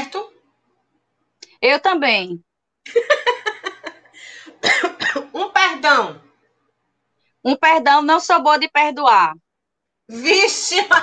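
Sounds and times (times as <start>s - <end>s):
breath: 4.1s - 4.6s
woman coughing: 4.6s - 5.5s.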